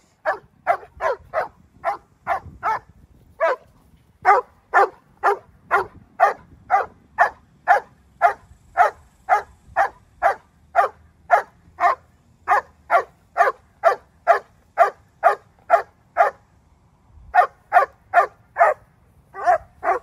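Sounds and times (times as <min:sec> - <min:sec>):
dog barking: 0:00.2 - 0:16.4, 0:17.4 - 0:20.0.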